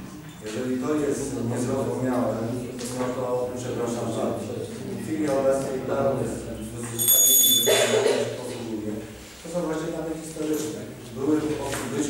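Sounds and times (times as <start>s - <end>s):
high-pitched metallic ring: 7.0s - 8.2s.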